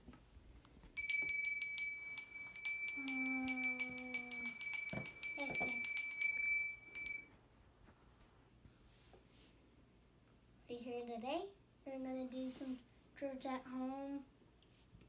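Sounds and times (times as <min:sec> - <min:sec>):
small hand bell ringing: 0:01.0 - 0:07.3
child holding a sung note: 0:03.0 - 0:04.6.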